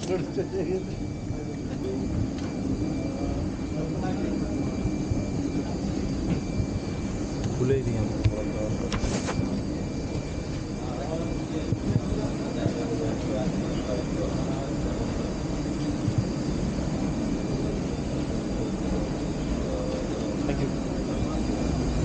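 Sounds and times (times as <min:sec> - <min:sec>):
faint high whine: 0:00.0 - 0:22.0
murmurs of voices: 0:00.0 - 0:22.0
rumble of airliner machinery: 0:00.0 - 0:22.0.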